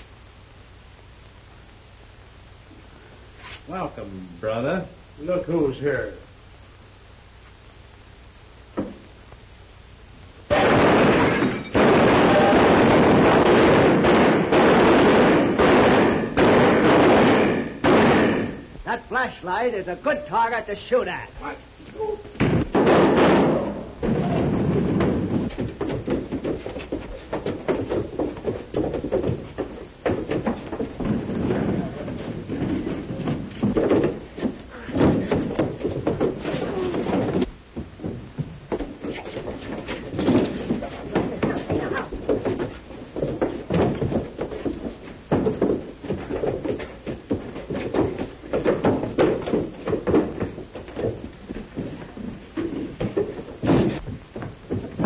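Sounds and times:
thumps and crashes of a scuffle: 10.5 - 18.7, 22.3 - 55.0.

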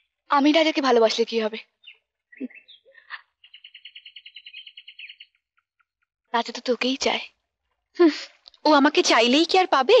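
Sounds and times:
bird chirping and trilling: 0.0 - 7.2.

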